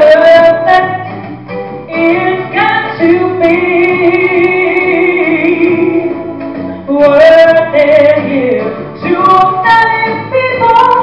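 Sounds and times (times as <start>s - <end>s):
woman singing pop song: 0.0s - 1.2s, 1.9s - 11.0s.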